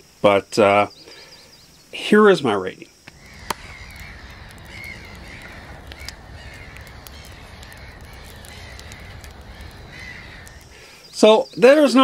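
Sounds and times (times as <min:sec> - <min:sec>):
steady background hiss: 0:00.0 - 0:12.0
faint clicks: 0:03.0 - 0:11.1
crows cawing: 0:03.1 - 0:11.0.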